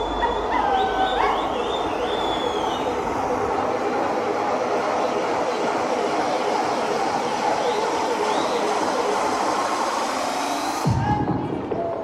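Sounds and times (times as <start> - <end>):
deep kick drum: 10.8 - 12.0.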